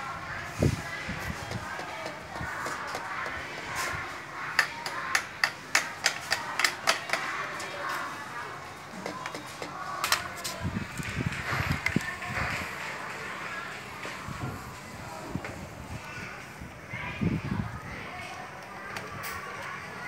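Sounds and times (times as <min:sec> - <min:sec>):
toy hammer tapping on wheel: 0:04.6 - 0:07.3.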